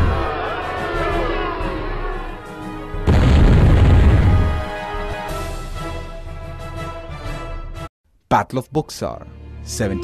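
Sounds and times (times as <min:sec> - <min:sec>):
background music: 0:00.0 - 0:10.0
deep rumbling boom: 0:03.1 - 0:04.7.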